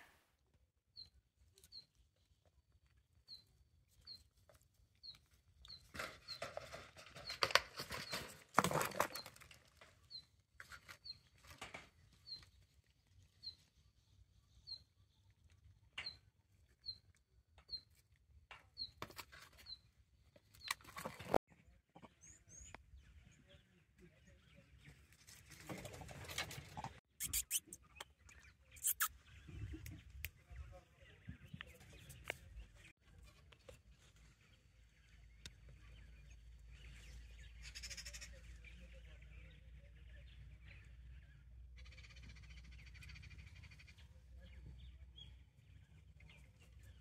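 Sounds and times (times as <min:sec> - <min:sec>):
monkeys rustling and clicking: 0:25.2 - 0:27.9, 0:28.8 - 0:29.1
short high chirp: 0:27.2 - 0:27.8, 0:28.8 - 0:29.1.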